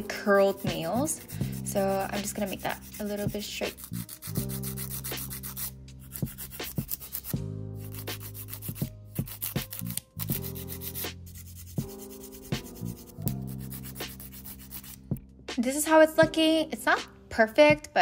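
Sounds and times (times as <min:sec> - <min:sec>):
emery board filing fingernails: 0:00.3 - 0:15.0.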